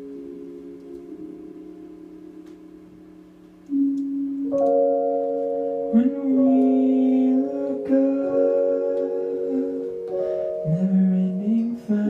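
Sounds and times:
held chord ringing: 0.0 - 12.0.

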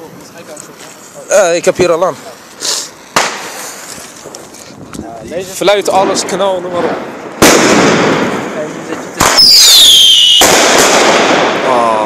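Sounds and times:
short hiss: 2.5 - 4.1
firecracker bang: 3.1 - 3.7, 5.9 - 12.0.

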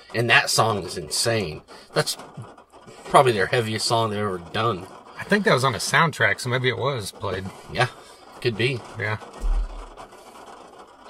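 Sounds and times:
brief low rumble: 9.4 - 10.0.

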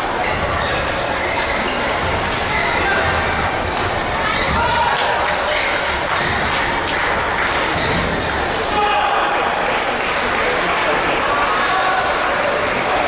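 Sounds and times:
background chatter: 0.0 - 13.0.

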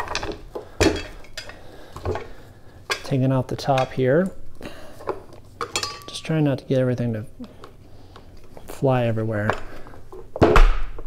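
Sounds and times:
dumbbell parts clinking: 0.0 - 2.3, 5.6 - 6.3.

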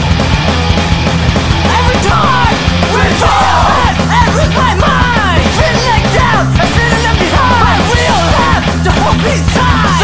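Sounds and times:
hardcore punk song: 0.0 - 10.0
shouted vocal: 1.7 - 10.0.

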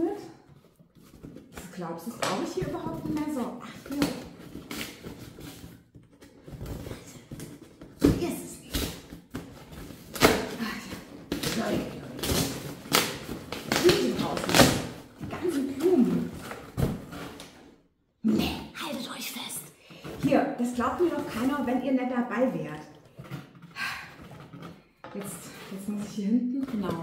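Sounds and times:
cardboard box rustling: 0.4 - 17.7.

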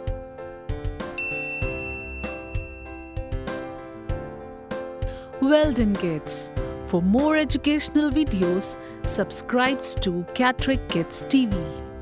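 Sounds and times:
children's music with steady beat: 0.8 - 12.0
bright ding chime: 1.2 - 3.6.

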